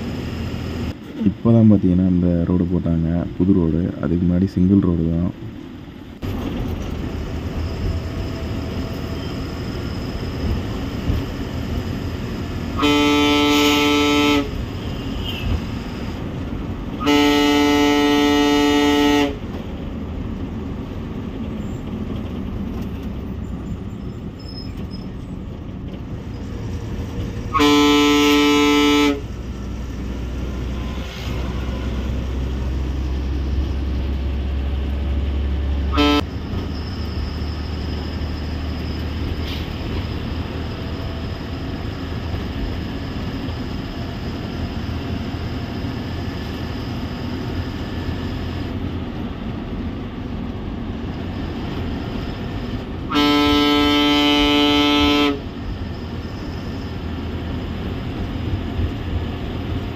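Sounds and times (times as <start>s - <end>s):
bus engine drone: 0.0s - 59.9s
road noise: 0.0s - 59.9s
bus horn blasts: 12.6s - 15.8s, 16.9s - 19.6s, 27.4s - 29.4s, 30.8s - 32.2s, 35.8s - 36.4s, 53.0s - 55.6s.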